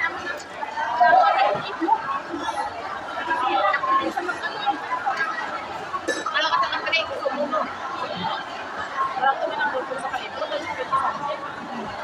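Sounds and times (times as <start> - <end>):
women talking: 6.1 - 8.4, 9.2 - 12.0.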